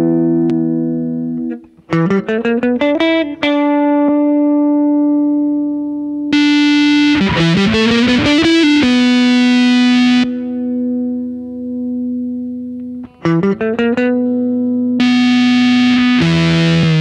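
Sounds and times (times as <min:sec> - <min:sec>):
distorted fuzz guitar: 0:06.3 - 0:17.0
electric guitar held note: 0:06.4 - 0:10.7.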